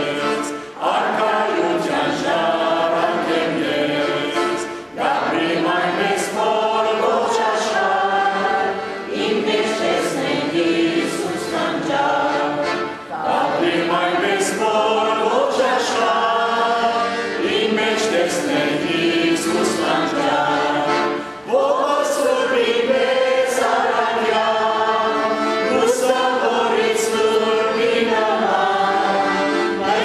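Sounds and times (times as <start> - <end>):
voices chanting slow melody: 0.0 - 30.0.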